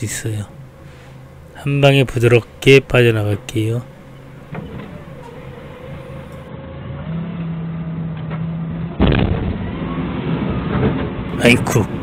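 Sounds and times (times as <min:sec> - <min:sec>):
forklift engine revving: 0:00.6 - 0:07.8.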